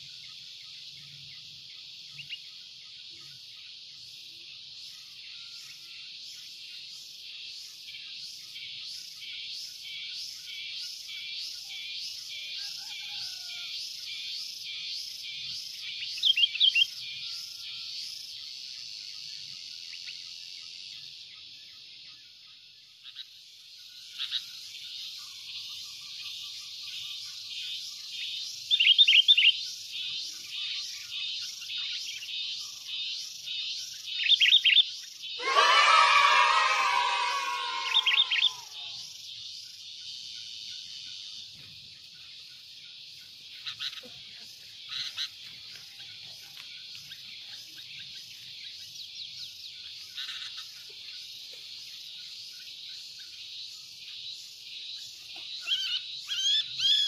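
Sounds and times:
pulsing insect chorus: 0.0s - 57.0s
bird chirps: 33.8s - 39.0s, 54.9s - 57.0s
harsh bird call: 35.4s - 39.0s.

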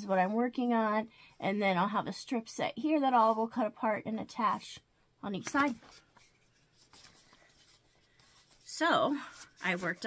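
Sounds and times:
woman speaking: 0.0s - 5.8s, 8.7s - 10.0s
paper and fabric rustling: 5.4s - 10.0s.

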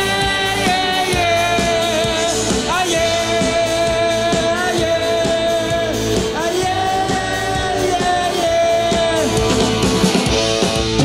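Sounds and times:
drum beat: 0.0s - 11.0s
live rock band playing: 0.0s - 11.0s.

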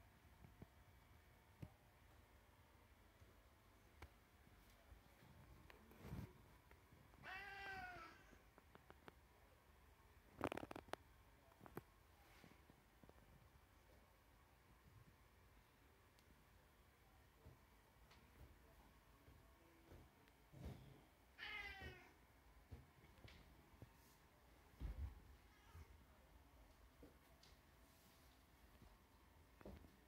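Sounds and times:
cat meowing: 7.2s - 8.3s, 21.4s - 22.2s.

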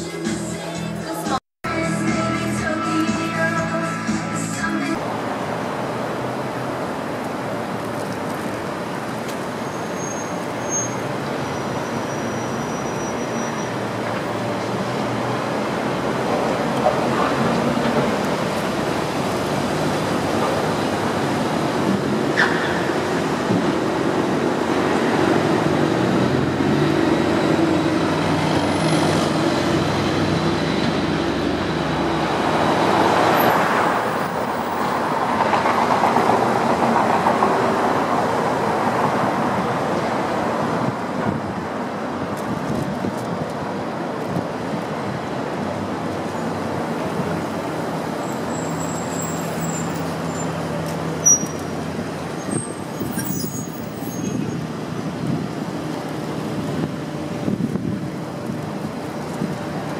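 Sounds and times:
traffic driving past: 4.9s - 59.9s.

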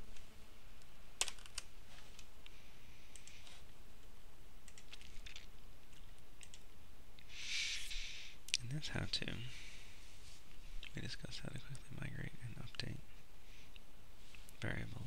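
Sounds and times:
faint steady hiss: 0.0s - 15.0s
computer keyboard keys clicking: 1.2s - 1.7s, 4.7s - 6.6s.

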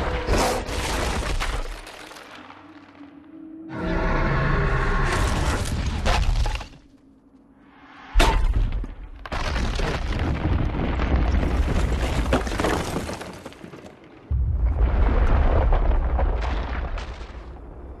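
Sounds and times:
ice crashing and shattering: 0.4s - 2.3s, 9.3s - 13.8s.

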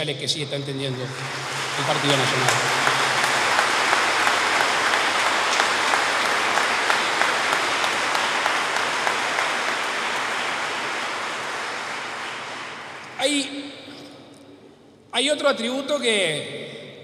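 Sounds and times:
audience applauding: 0.8s - 13.5s.

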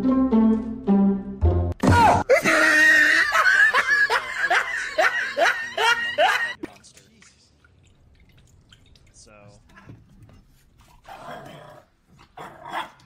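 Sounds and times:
person laughing in whoops: 2.0s - 6.6s.

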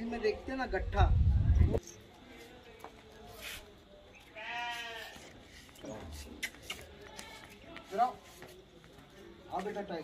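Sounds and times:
goat bleating: 4.4s - 5.2s.

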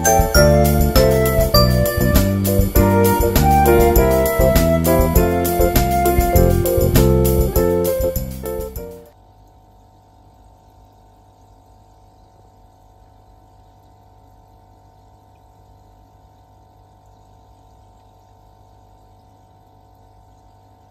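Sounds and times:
low pump hum: 0.0s - 8.9s.

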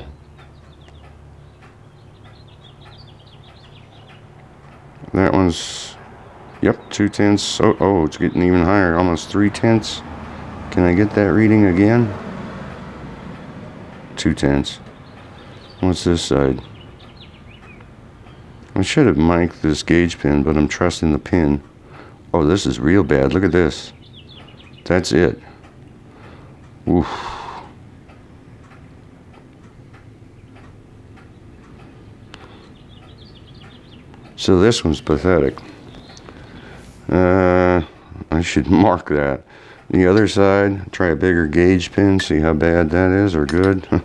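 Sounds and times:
faint workshop hum: 0.0s - 44.0s
faint high ticks: 0.2s - 5.2s, 16.6s - 18.8s, 25.6s - 34.5s
faint light clicks: 35.5s - 36.9s.

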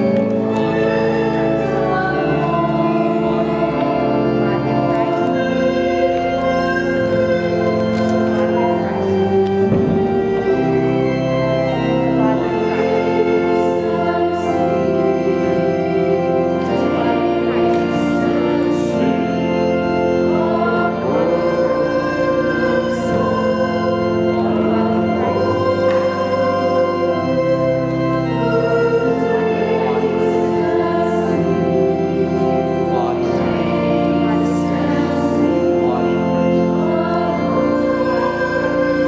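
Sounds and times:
organ chords: 0.0s - 39.0s
people singing a hymn: 0.0s - 39.0s.

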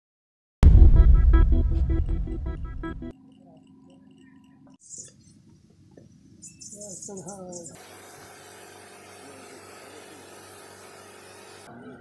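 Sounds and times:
mist spraying hiss: 7.8s - 11.7s.

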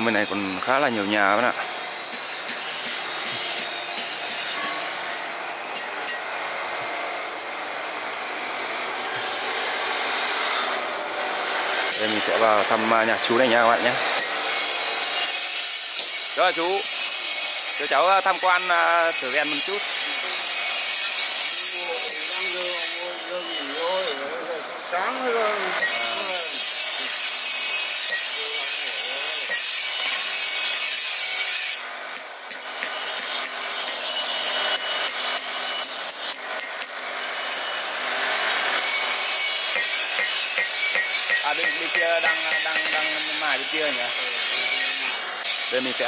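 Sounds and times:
loud rasping metalworking noise: 0.0s - 46.0s
hammer on anvil: 2.1s - 6.3s, 28.1s - 28.4s, 29.4s - 30.2s, 32.5s - 37.0s, 38.8s - 45.2s
voices: 21.8s - 26.6s.

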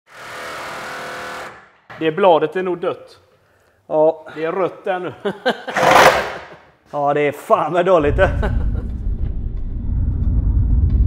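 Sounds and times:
reciprocating saw cutting sheet steel: 5.7s - 6.6s.

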